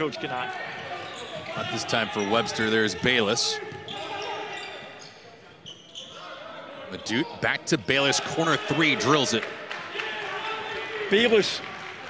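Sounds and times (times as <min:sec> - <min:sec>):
sneaker squeaks on hardwood: 0:03.6 - 0:06.3.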